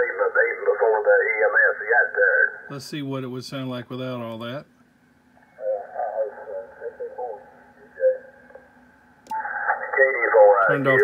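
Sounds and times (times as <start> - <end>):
muffled radio voice: 0.0 - 2.5, 5.6 - 8.4, 9.3 - 11.0.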